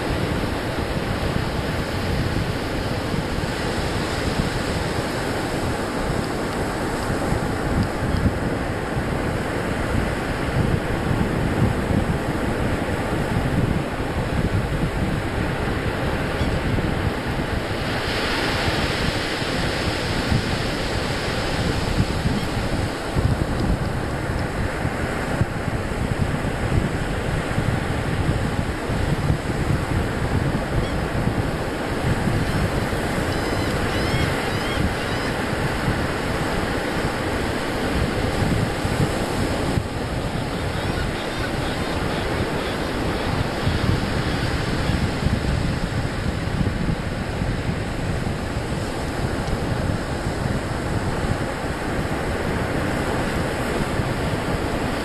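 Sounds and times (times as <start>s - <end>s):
ocean surf breaking: 0.0s - 55.0s
wind buffeting microphone: 0.0s - 55.0s.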